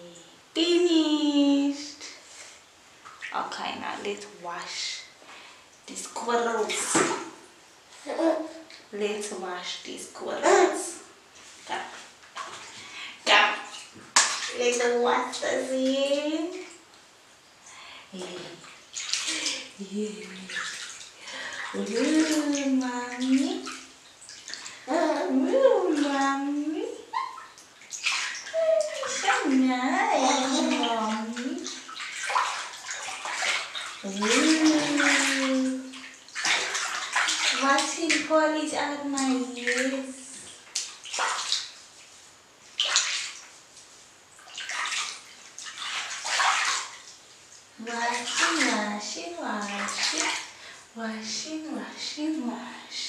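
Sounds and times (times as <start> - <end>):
woman's wordless voice: 0.0 - 2.2, 3.3 - 5.1, 5.9 - 7.0, 8.9 - 11.0, 11.6 - 12.0, 13.2 - 13.6, 14.5 - 16.7, 18.1 - 18.6, 19.3 - 20.6, 21.4 - 23.7, 24.9 - 27.3, 28.6 - 31.7, 34.0 - 35.9, 37.6 - 40.4, 47.8 - 50.4, 51.0 - 53.0
water splashing in a bathtub: 0.0 - 52.9.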